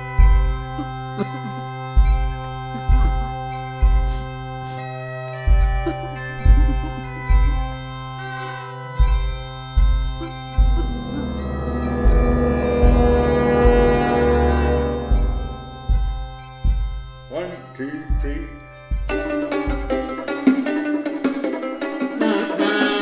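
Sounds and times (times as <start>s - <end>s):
bass drum beats: 0.0s - 0.9s, 2.0s - 4.3s, 5.5s - 7.8s, 9.0s - 17.4s, 18.1s - 20.1s
bagpipes playing marching tune: 0.0s - 23.0s.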